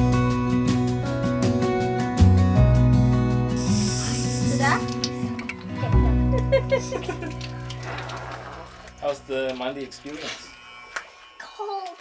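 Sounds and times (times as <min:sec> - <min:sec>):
water spraying from shower hose: 0:03.6 - 0:05.4, 0:06.9 - 0:10.6
water splashing on floor: 0:04.6 - 0:05.8, 0:06.4 - 0:10.4.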